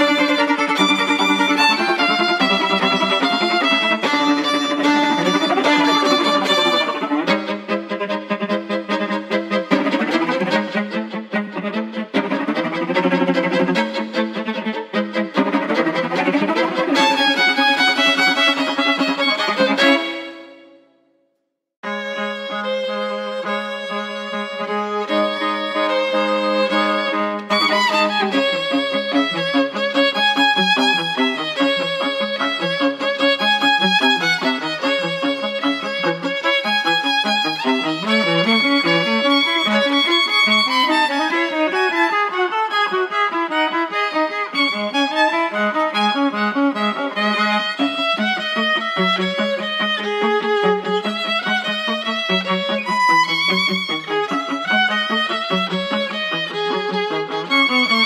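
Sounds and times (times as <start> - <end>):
low accompaniment: 0.0 - 20.8
violin playing: 0.0 - 21.0, 21.8 - 58.0.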